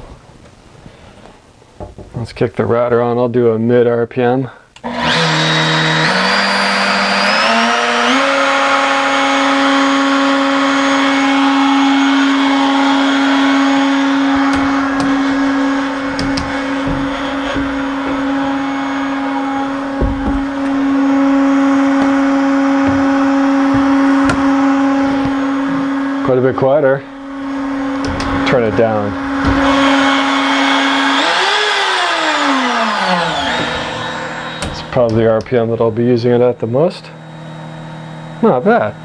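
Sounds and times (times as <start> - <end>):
router spindle whine: 4.8 - 39.0
knocks on enclosure panels: 14.2 - 25.5, 29.2 - 30.4.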